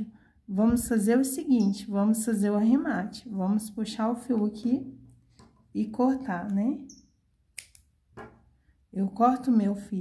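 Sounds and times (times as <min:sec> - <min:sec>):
scissors snipping yarn: 0:07.5 - 0:07.9.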